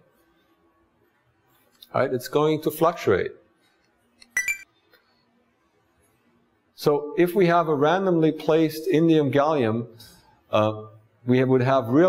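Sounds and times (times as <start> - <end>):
short chime: 4.2 - 4.6.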